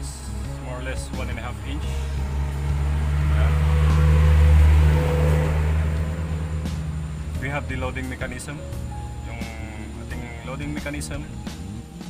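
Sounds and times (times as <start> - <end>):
motor vehicle passing: 0.4 - 12.0.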